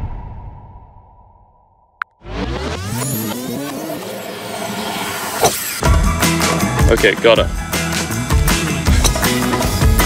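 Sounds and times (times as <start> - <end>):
music with heavy beat: 7.5 - 10.0.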